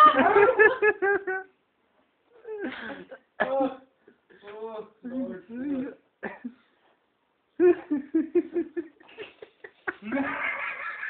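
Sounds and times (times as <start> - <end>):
person laughing hard: 0.0 - 1.5, 7.6 - 11.0.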